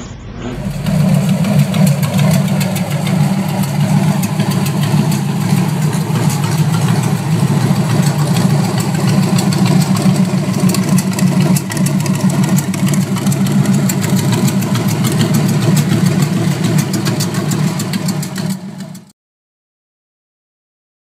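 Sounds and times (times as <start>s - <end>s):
engine idling through open headers: 0.6s - 19.1s.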